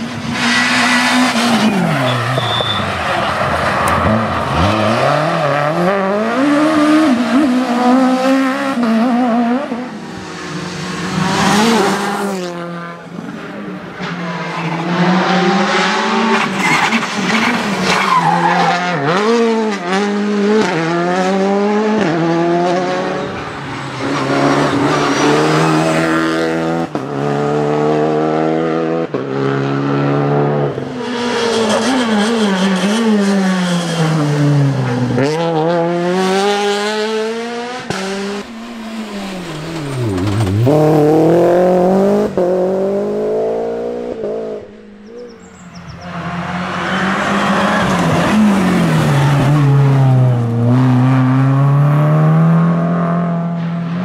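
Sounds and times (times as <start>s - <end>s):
rally car engines revving hard: 0.0s - 54.0s.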